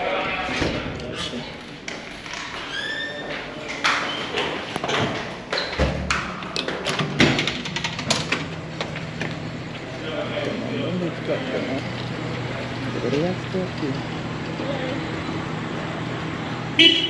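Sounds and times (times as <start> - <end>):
glass door squeak: 2.4 - 4.4
door clicks and knocks: 4.9 - 8.5.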